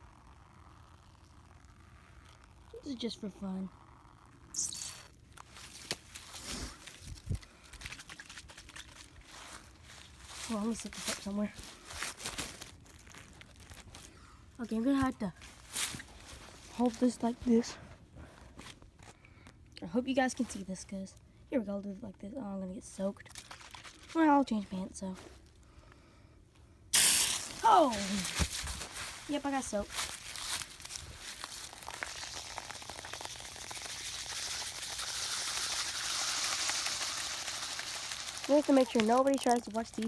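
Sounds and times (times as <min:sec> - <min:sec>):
fizzy drink pouring and splattering: 0:23.2 - 0:24.2, 0:26.9 - 0:28.4, 0:30.2 - 0:40.0.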